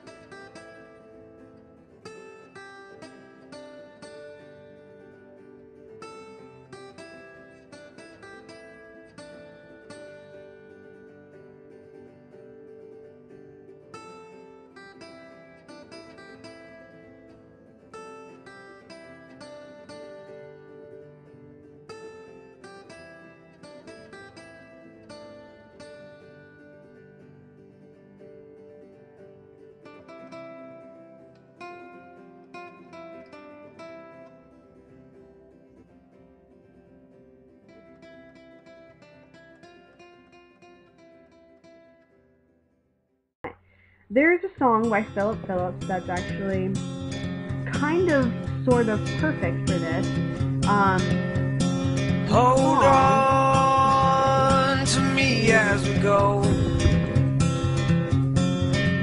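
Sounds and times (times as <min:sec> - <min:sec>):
plucked acoustic guitar: 0:00.0 - 0:42.5, 0:43.4 - 0:59.0.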